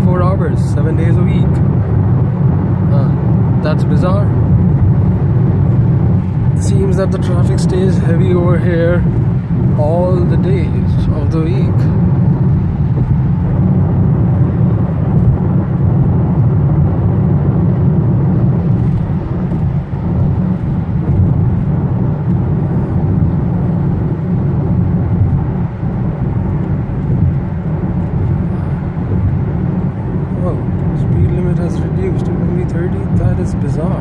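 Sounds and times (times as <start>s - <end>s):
car tyres and engine rumble: 0.0s - 34.0s.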